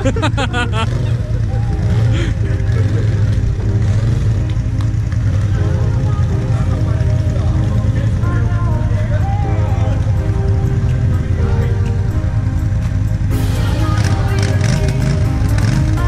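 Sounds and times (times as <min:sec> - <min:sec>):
music: 0:00.0 - 0:16.0
quad engine running: 0:00.0 - 0:16.0
voices: 0:00.0 - 0:16.0.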